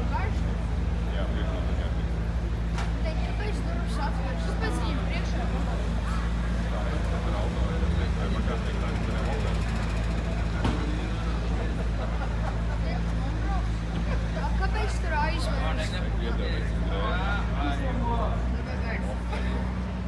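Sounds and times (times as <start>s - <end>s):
car engine idling: 0.0s - 20.0s
people chattering: 0.0s - 20.0s.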